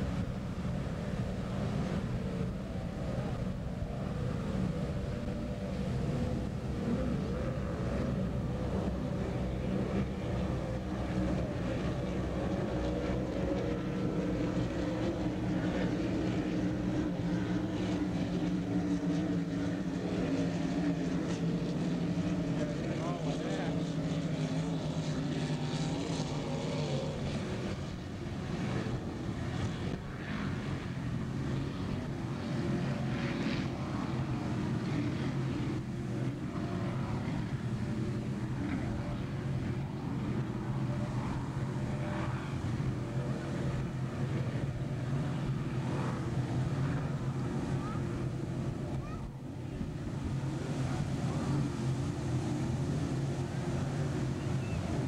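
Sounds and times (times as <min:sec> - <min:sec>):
powerboat engines droning: 0:00.0 - 0:55.0.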